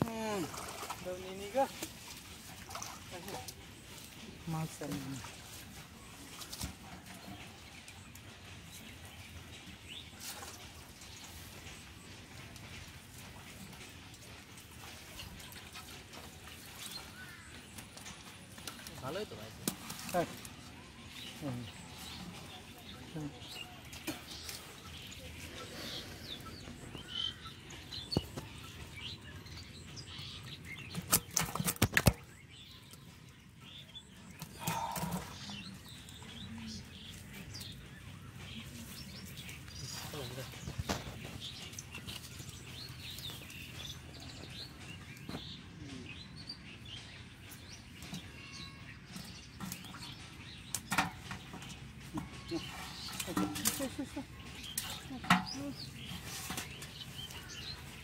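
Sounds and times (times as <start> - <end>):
water splashing and sloshing: 0.0 - 45.7, 46.4 - 58.0
faint birds chirping: 0.0 - 58.0.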